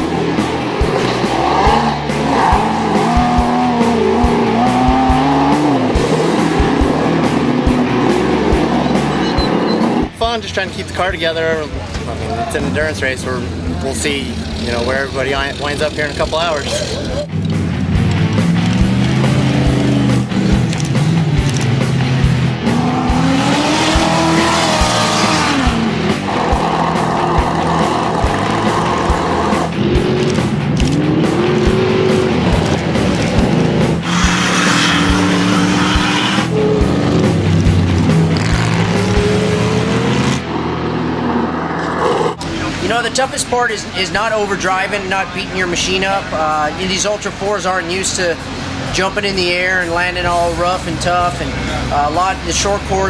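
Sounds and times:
background music with beat: 0:00.0 - 0:12.2, 0:16.9 - 0:40.4
race car engines revving: 0:00.0 - 0:53.0.

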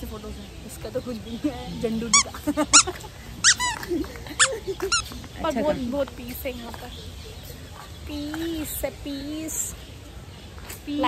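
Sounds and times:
high-pitched squeaky animal calls: 0:02.0 - 0:05.8.

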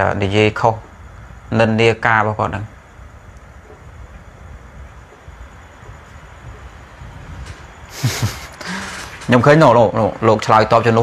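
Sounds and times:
man talking: 0:00.0 - 0:00.9, 0:01.5 - 0:02.8, 0:09.2 - 0:11.0
low background rumble: 0:00.0 - 0:11.0.

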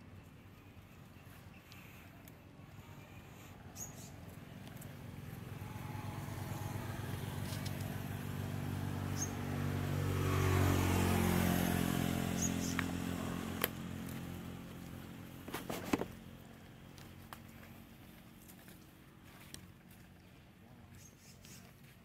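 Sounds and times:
vehicle engine passing by: 0:03.1 - 0:16.6.

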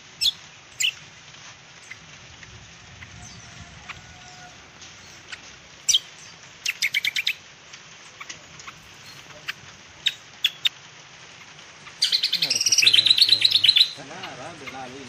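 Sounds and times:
small bird chirping: 0:00.2 - 0:01.1, 0:01.8 - 0:02.1, 0:02.9 - 0:10.7, 0:11.3 - 0:15.0.

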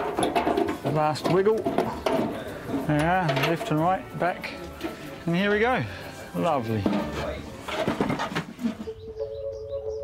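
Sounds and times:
birds chirping: 0:01.6 - 0:07.7, 0:08.4 - 0:10.0.

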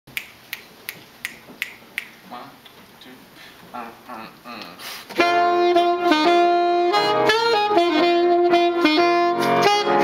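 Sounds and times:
sharp finger snaps: 0:00.1 - 0:02.2
saxophone: 0:03.8 - 0:10.0
piano: 0:05.2 - 0:10.0.

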